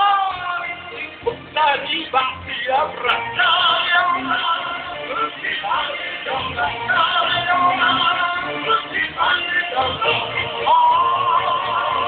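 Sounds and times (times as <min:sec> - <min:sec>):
band music through a pa system: 0:00.0 - 0:12.0
male vocal duo singing: 0:00.0 - 0:12.0.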